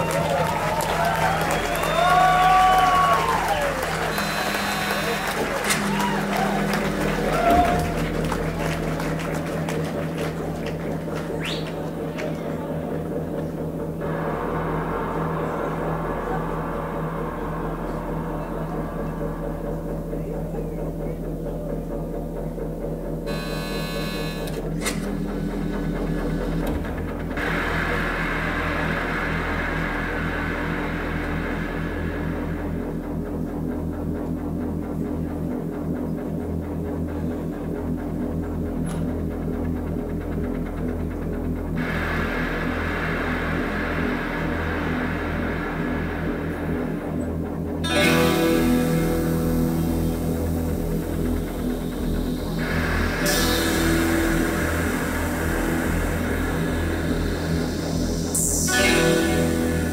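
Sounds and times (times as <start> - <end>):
loud synth chord: 2.8 - 10.4, 23.0 - 35.6, 41.6 - 59.9
throbbing low synth pulse: 3.8 - 59.9
hissing noise swells: 41.8 - 47.8, 49.9 - 59.9.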